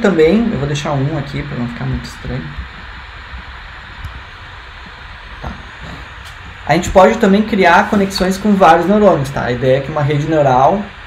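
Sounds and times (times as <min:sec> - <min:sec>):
low background rumble and hiss: 0:00.0 - 0:11.0.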